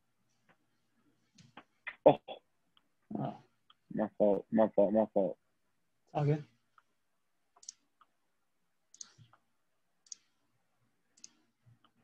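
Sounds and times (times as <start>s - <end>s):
faint computer mouse clicks: 7.6s - 8.1s, 8.9s - 9.4s, 10.0s - 10.3s, 11.2s - 12.0s.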